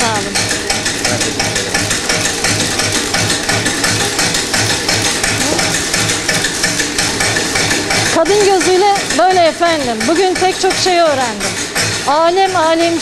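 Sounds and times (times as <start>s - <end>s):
low mill knock: 0.0s - 13.0s
stone mill rattling clatter: 0.0s - 13.0s.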